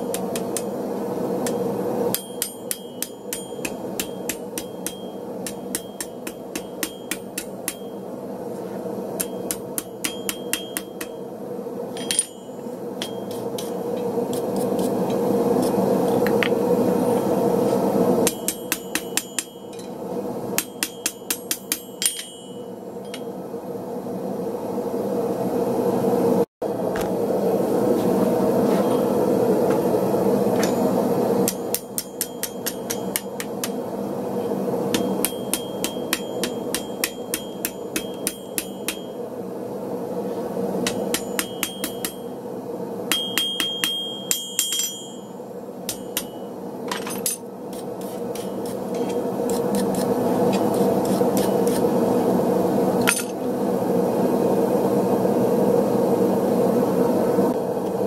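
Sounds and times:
hammer striking metal on anvil: 1.4s - 8.1s, 9.1s - 11.3s, 11.9s - 14.0s, 18.2s - 20.0s, 20.6s - 23.3s, 30.6s - 33.8s, 34.9s - 39.2s, 40.8s - 42.3s, 43.1s - 49.2s, 53.0s - 53.4s.

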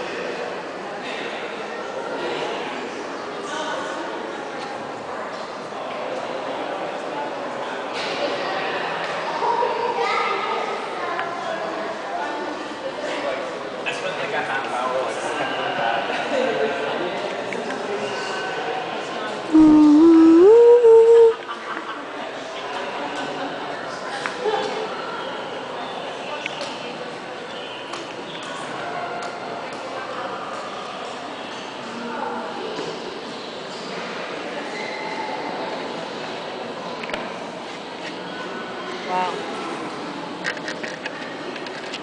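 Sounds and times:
echoing room noise: 0.0s - 21.8s
murmur of voices: 0.0s - 42.0s
person humming: 19.5s - 21.4s.

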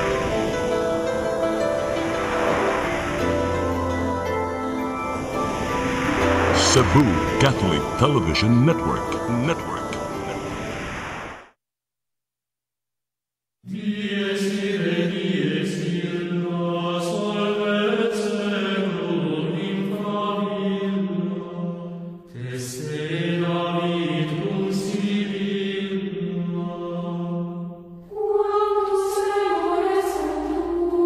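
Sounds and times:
chanted vocal music: 0.0s - 10.9s, 13.7s - 31.0s.

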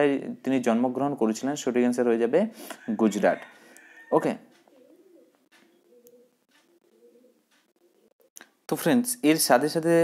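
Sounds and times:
bird cooing: 4.7s - 8.3s.

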